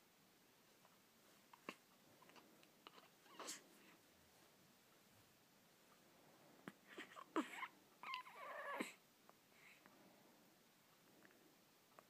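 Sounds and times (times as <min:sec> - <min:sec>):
infant cooing: 0:01.5 - 0:03.6, 0:06.6 - 0:09.0.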